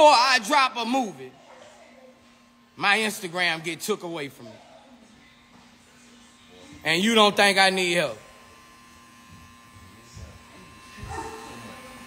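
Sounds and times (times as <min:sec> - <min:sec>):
electric hair clippers humming: 0:06.4 - 0:12.0.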